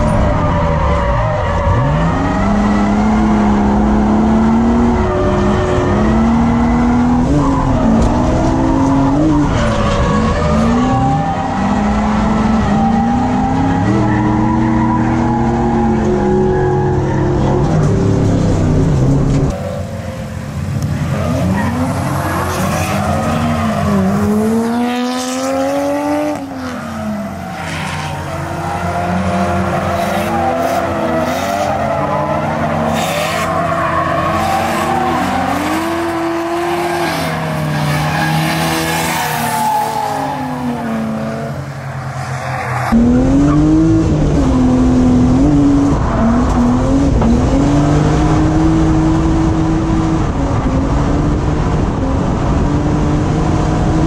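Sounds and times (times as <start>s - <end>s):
in-car engine sound: 0.0s - 19.6s, 41.0s - 54.0s
car engines revving high: 0.0s - 54.0s.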